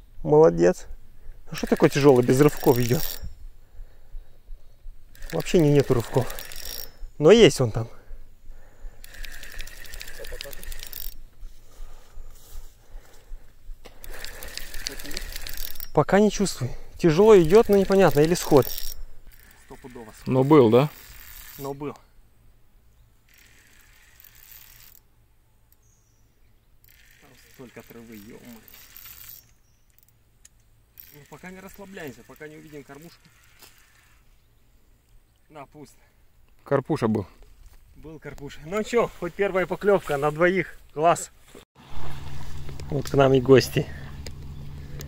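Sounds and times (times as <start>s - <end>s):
fishing reel clicking while cranked: 1.5s - 3.4s, 5.0s - 11.4s, 13.9s - 22.0s, 23.2s - 25.1s, 26.8s - 30.1s, 30.9s - 34.3s.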